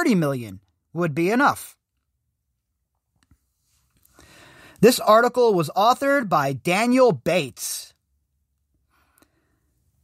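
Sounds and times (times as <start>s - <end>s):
soft intake of breath: 3.6s - 4.8s.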